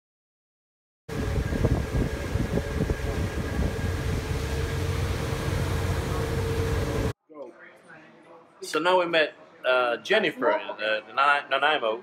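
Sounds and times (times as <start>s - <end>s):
mechanical drone with hum: 1.1s - 7.2s.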